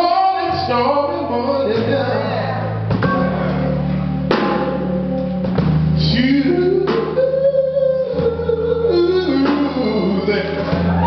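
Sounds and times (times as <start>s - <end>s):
live band playing: 0.0s - 11.0s
person singing: 6.0s - 11.0s.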